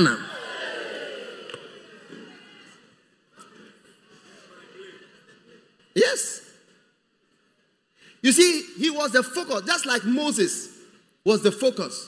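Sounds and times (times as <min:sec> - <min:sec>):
man's amplified voice: 0:00.0 - 0:00.4, 0:05.9 - 0:06.7, 0:08.1 - 0:12.0.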